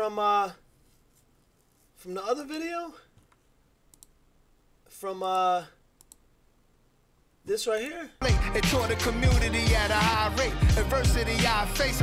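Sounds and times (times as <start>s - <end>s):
faint quick clicks: 3.2s - 4.2s, 6.0s - 6.2s.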